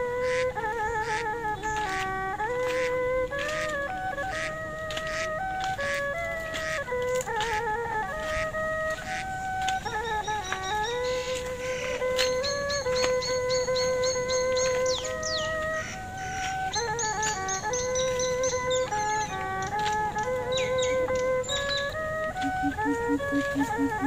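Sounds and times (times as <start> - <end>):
wind instrument melody: 0.0 - 24.0.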